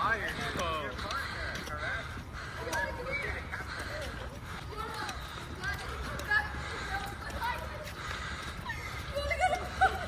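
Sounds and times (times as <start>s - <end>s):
footsteps on concrete: 0.0s - 10.0s
indistinct chatter: 0.0s - 10.0s.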